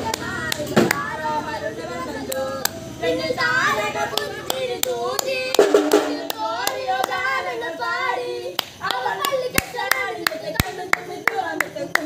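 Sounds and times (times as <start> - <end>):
rhythmic hand-clapping: 0.0 - 1.1, 3.8 - 12.0
group of voices: 0.0 - 12.0.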